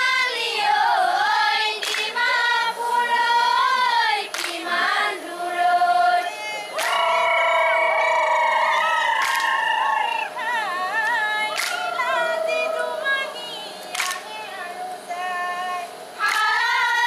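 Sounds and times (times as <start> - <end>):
group of voices singing: 0.0 - 17.0.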